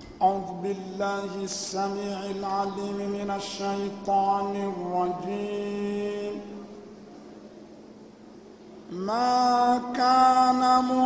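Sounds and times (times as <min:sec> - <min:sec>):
man chanting into microphone: 0:00.0 - 0:06.8, 0:08.9 - 0:11.0.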